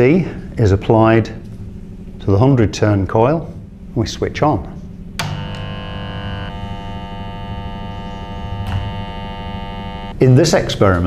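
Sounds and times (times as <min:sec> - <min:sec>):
switch clicking: 0:05.2 - 0:05.7, 0:08.5 - 0:09.3
transformer buzzing: 0:05.2 - 0:10.2.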